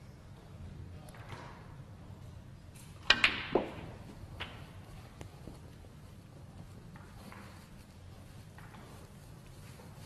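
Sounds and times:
snooker balls clicking together: 2.8s - 4.8s.

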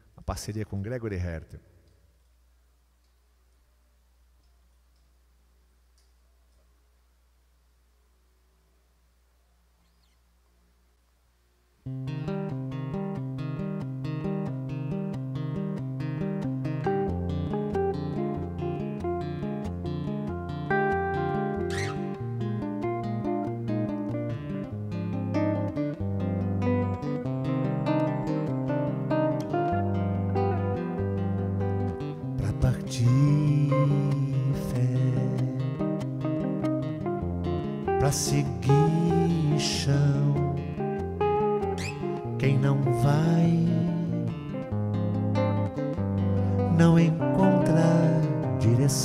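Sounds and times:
acoustic guitar: 11.8s - 49.0s
electric guitar: 11.8s - 49.0s.

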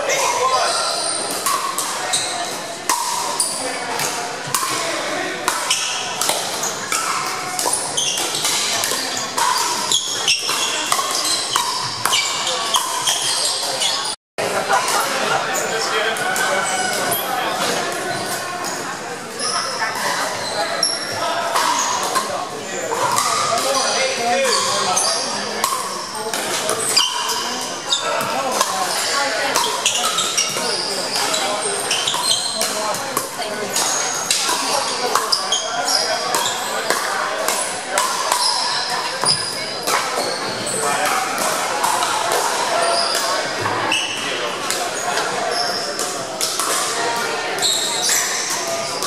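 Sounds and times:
sneaker squeaks: 0.0s - 4.1s, 5.6s - 14.2s, 15.6s - 37.1s, 38.1s - 42.0s, 42.6s - 49.0s
background chatter: 0.0s - 49.0s.

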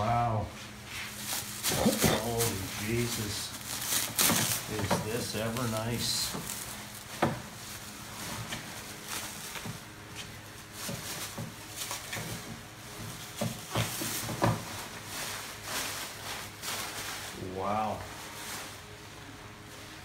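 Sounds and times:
plastic packing rustling: 0.9s - 20.0s.

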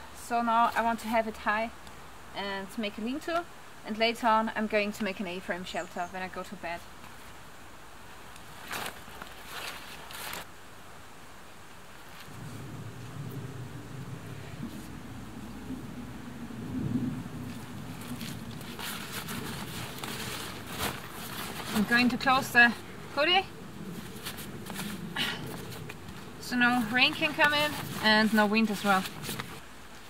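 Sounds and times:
fabric rustling and handling: 8.1s - 10.5s, 17.5s - 30.0s
steady low rumble: 12.2s - 29.6s.

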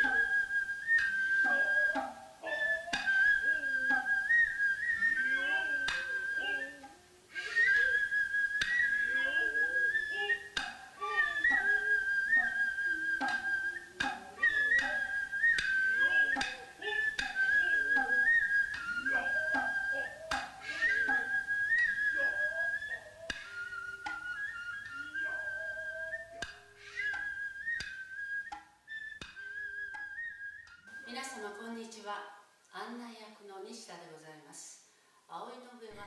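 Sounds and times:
bamboo flute high note: 0.0s - 31.2s
sharp shoulder drum strikes: 13.2s - 14.9s.

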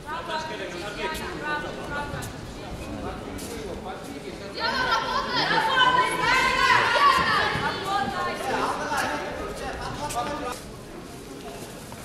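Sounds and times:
voices chattering in echoing hall: 0.0s - 12.0s.

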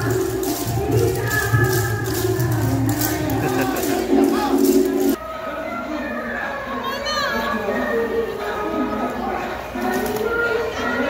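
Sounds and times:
crowd voices: 0.0s - 11.0s
dance music with singing: 0.0s - 11.0s.

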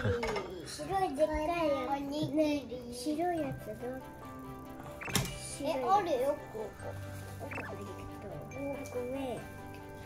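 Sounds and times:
background music: 0.0s - 10.0s
young children's squeaky voices: 4.9s - 9.5s.

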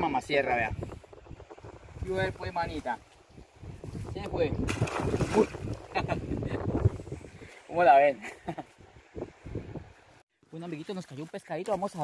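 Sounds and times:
wind buffeting microphone: 0.0s - 7.9s, 8.6s - 10.2s
fish splashing into water: 4.6s - 5.8s.

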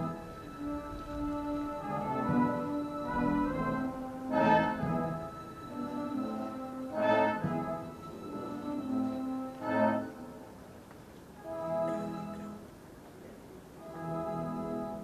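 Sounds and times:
military bands playing brass music: 0.0s - 10.7s, 11.4s - 12.7s, 13.8s - 15.0s.

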